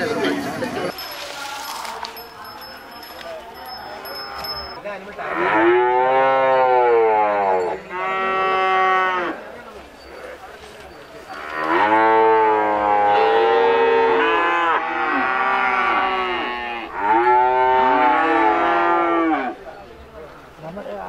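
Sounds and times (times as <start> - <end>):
cattle mooing: 11.4 - 19.6.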